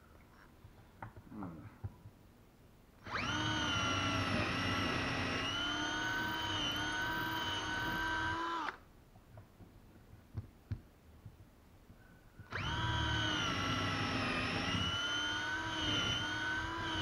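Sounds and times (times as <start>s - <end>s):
cordless drill whining: 3.0s - 8.8s, 12.5s - 17.0s.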